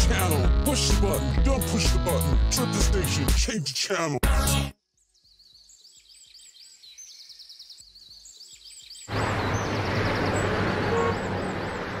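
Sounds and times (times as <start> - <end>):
birds chirping: 4.8 - 12.0
street traffic with low hum: 9.1 - 12.0.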